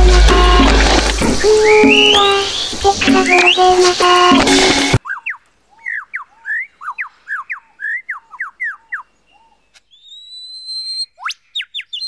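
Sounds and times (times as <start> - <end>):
lyrebird singing whistled notes: 1.4 - 3.8, 5.0 - 12.0.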